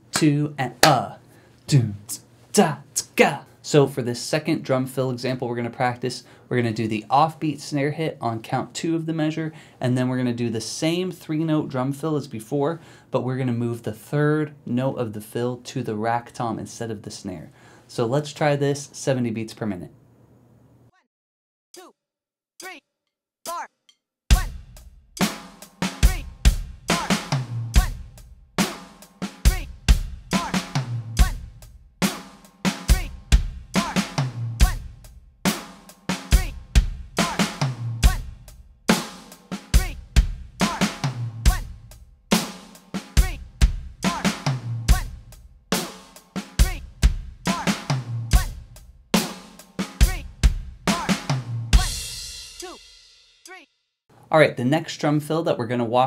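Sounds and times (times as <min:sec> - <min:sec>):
electronic drum kit rock groove: 0:24.3 - 0:53.0.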